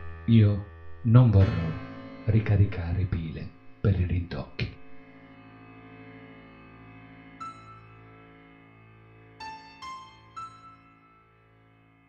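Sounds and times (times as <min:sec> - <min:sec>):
sustained chord background music: 0:00.0 - 0:12.0.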